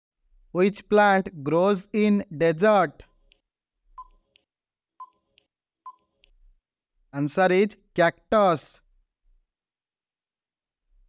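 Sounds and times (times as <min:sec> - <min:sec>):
short electronic beeps: 0:04.0 - 0:04.4, 0:05.0 - 0:06.3.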